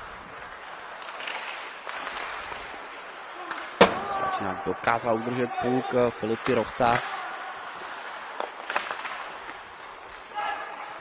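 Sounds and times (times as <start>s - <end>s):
skate blades scraping ice: 0.0s - 11.0s.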